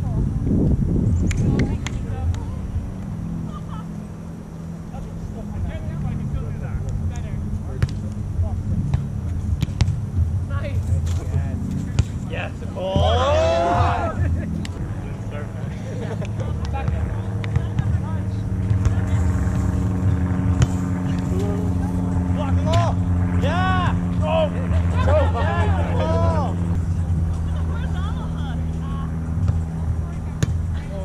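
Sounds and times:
motor engine running: 0:00.0 - 0:31.0
voices calling out: 0:12.4 - 0:19.5, 0:20.1 - 0:31.0.

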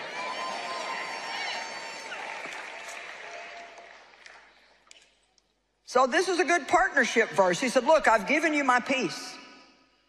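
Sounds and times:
audience applause: 0:00.0 - 0:04.8.

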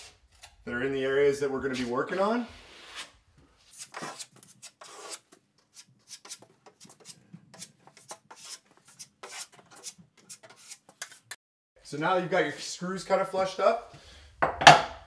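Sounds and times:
putty knife scraping drywall: 0:02.5 - 0:11.4.

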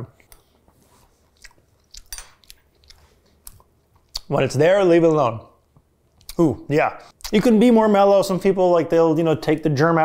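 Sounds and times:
mouth clicks and smacks: 0:01.3 - 0:04.3, 0:05.8 - 0:06.5.

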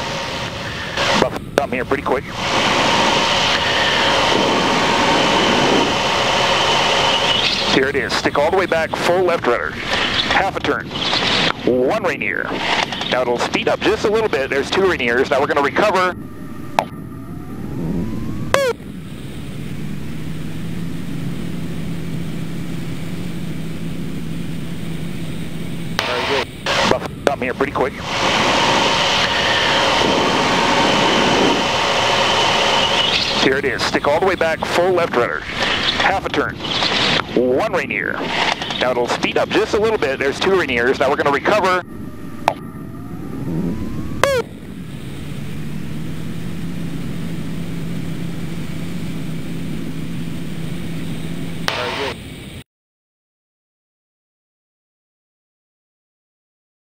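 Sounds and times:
airflow rushing: 0:00.0 - 0:08.1, 0:16.2 - 0:34.1
wind noise: 0:00.0 - 0:13.3, 0:25.2 - 0:51.6
propeller plane engine drone: 0:00.0 - 0:52.6.

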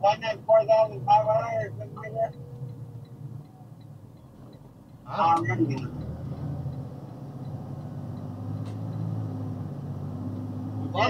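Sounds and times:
truck engine hum: 0:00.0 - 0:11.0
turn signal ticking: 0:00.0 - 0:11.0.

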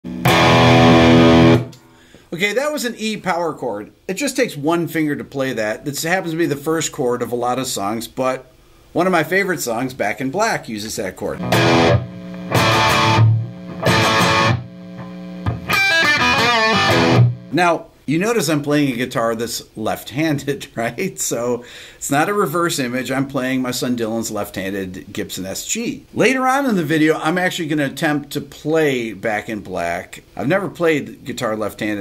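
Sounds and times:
electric guitar power chord: 0:00.1 - 0:01.8, 0:11.4 - 0:17.5.

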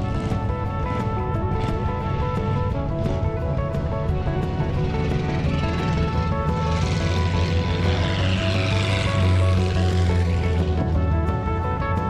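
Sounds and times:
background music: 0:00.0 - 0:12.0
race car passing: 0:03.8 - 0:12.0.

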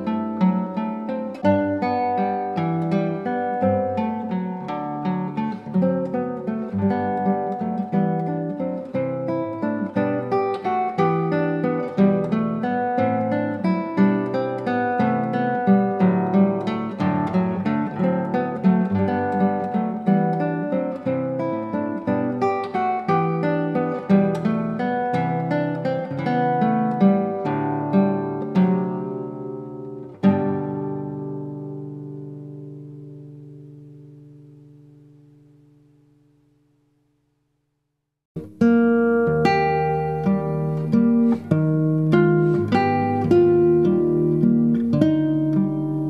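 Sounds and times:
fingerstyle classical guitar: 0:00.0 - 0:37.6, 0:38.4 - 0:46.0.

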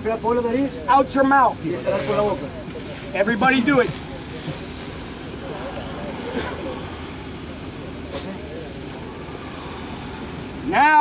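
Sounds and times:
outdoor background noise: 0:00.0 - 0:11.0
people breathing in and out: 0:03.9 - 0:10.6.

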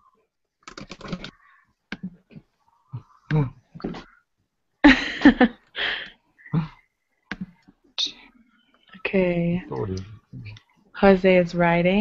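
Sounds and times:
computer keyboard clicks: 0:00.6 - 0:01.3.

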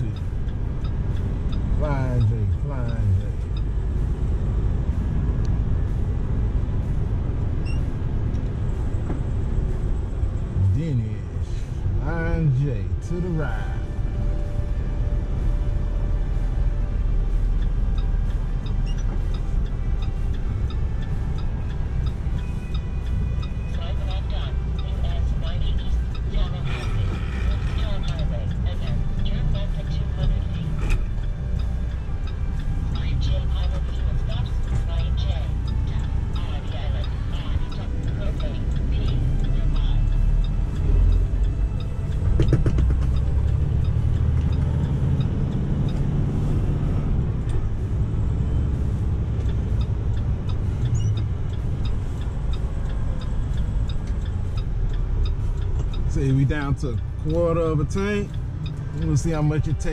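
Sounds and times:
truck engine and road noise: 0:00.0 - 0:59.9.

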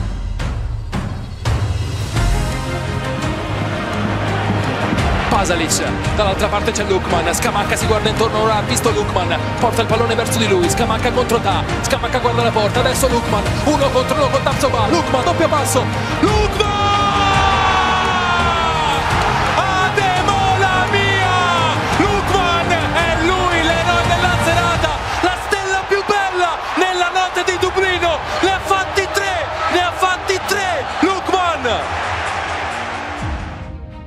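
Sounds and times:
background music: 0:00.0 - 0:34.0
commentator shouting: 0:05.2 - 0:32.0.

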